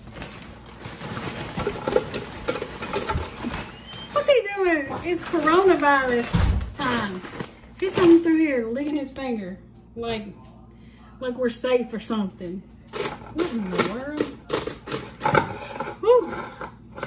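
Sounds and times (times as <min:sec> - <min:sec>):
chips clattering in metal can: 0:00.0 - 0:08.3
plastic bag crinkling: 0:00.0 - 0:08.6.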